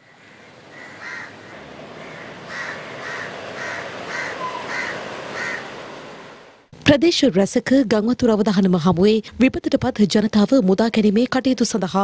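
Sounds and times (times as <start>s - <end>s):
bird calling: 0.0s - 6.4s
outdoor ambience hiss: 0.0s - 12.0s.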